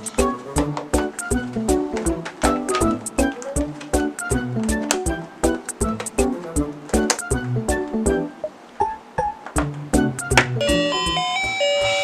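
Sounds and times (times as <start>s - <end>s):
toy playing chiming tune: 10.6s - 12.0s.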